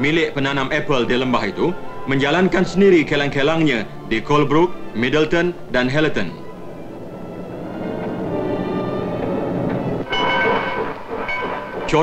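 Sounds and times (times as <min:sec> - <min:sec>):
train whistle chord: 0:06.1 - 0:12.0
steam train running: 0:06.4 - 0:12.0.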